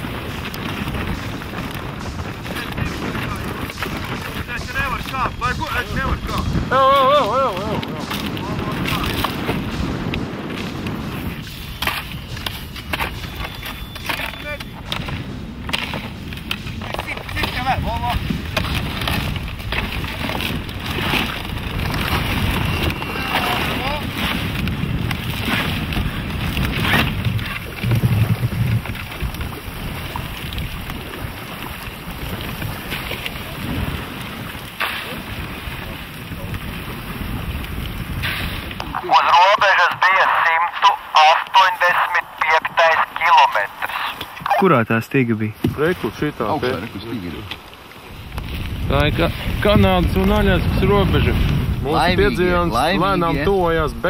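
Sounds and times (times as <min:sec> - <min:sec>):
ice grinding against canoe hull: 0:00.0 - 0:39.5
wind on microphone: 0:00.0 - 0:44.8, 0:45.5 - 0:54.0
voices: 0:02.1 - 0:10.4, 0:12.5 - 0:15.2, 0:22.7 - 0:24.2, 0:38.9 - 0:47.6.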